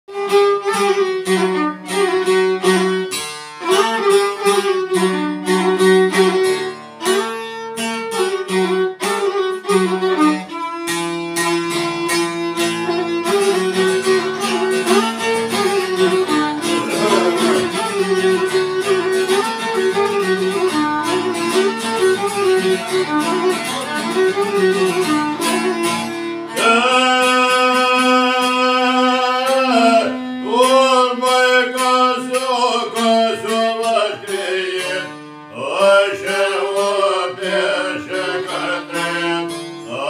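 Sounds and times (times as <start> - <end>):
plucked folk lute: 0.1 - 40.0
violin: 0.1 - 40.0.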